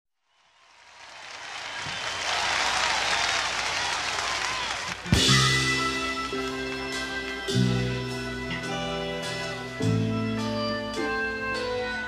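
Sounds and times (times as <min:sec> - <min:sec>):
audience applause: 0:00.4 - 0:08.0
whistles in crowd: 0:01.4 - 0:05.2.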